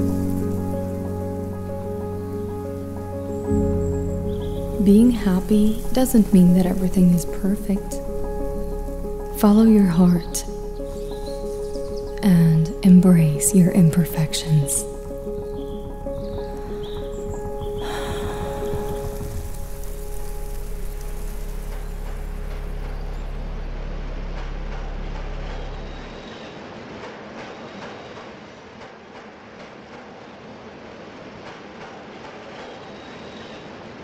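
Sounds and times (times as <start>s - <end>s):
soft music: 0.0s - 26.3s
deep low drone: 0.0s - 26.6s
subway train running noise: 23.7s - 34.0s
wheels clicking on rails: 24.3s - 34.0s.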